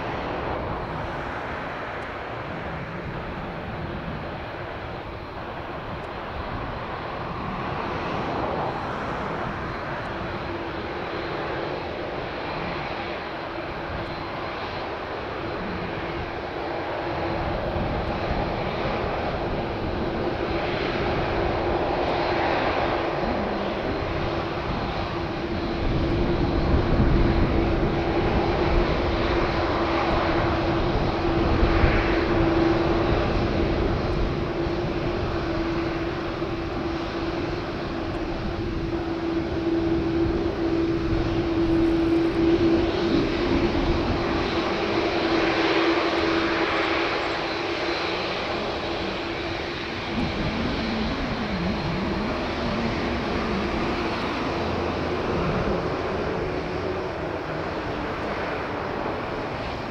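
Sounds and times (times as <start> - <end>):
deep aircraft rumble: 0.0 - 59.9
jet engines taxiing: 0.0 - 59.9.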